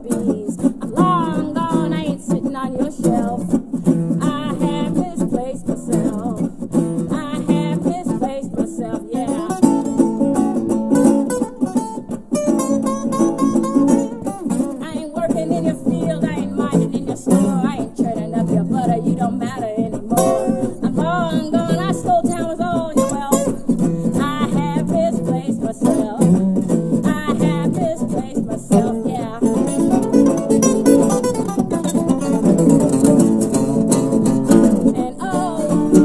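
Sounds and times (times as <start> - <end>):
acoustic guitar: 0.0 - 36.0
resonator guitar: 0.0 - 36.0
woman singing: 0.0 - 36.0.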